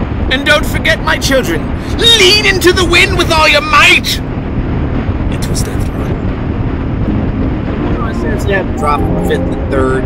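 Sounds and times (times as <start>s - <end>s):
wind rushing: 0.0s - 10.0s.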